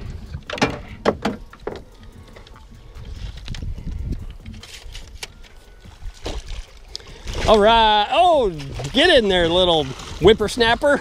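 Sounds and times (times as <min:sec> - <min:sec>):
moving water around boat: 0:00.0 - 0:11.0
wind rumble: 0:00.0 - 0:11.0.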